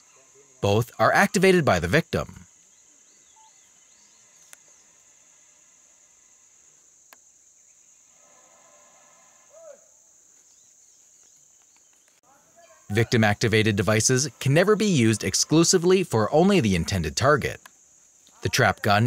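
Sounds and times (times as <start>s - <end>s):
faint bird chirps: 2.2s - 13.6s.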